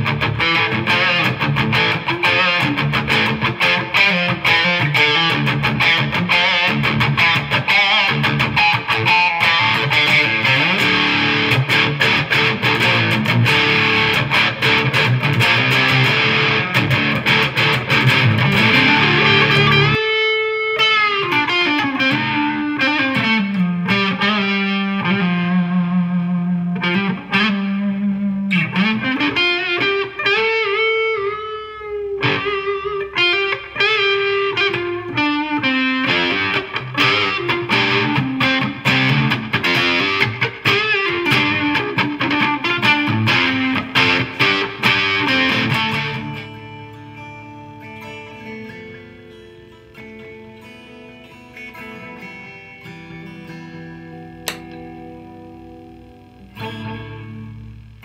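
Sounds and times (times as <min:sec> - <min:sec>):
distorted electric guitar: 0:00.0 - 0:58.0.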